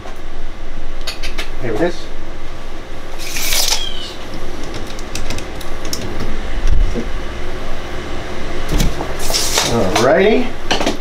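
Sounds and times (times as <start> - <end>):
tape measure hissing out: 3.2 - 4.3, 9.2 - 9.8.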